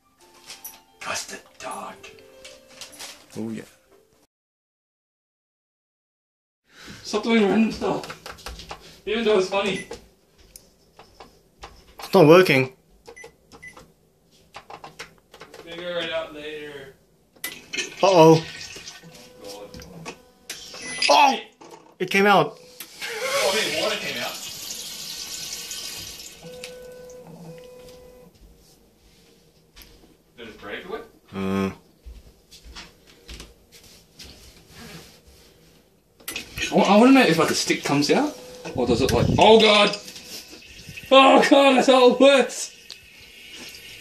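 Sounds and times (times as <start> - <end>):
water trickling in toilet bowl: 17.7 - 19.1, 39.5 - 41.5, 42.2 - 44.0.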